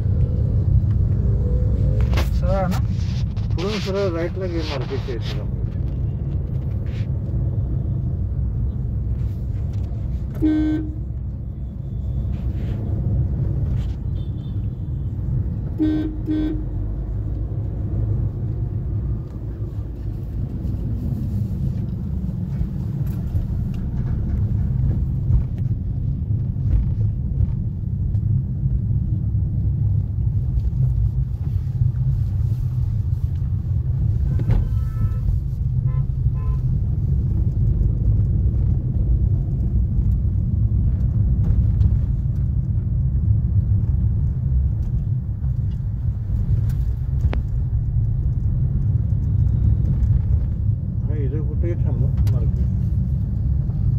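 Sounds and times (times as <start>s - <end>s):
car engine and road rumble: 0.0s - 53.9s.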